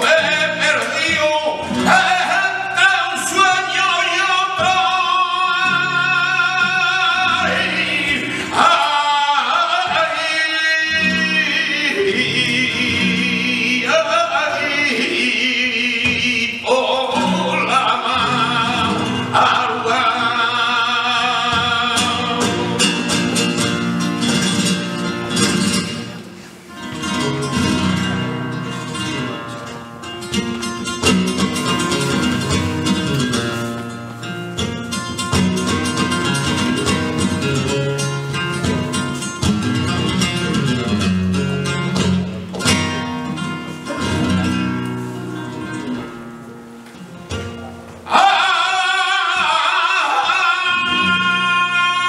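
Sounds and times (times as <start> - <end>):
flamenco guitar playing: 0.0 - 52.0.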